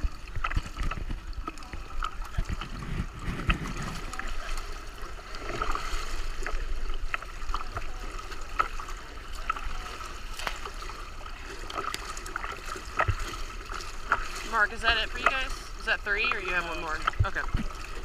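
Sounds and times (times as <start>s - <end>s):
pool water lapping against gutter: 0.0s - 18.0s
swimmers splashing: 0.0s - 18.0s.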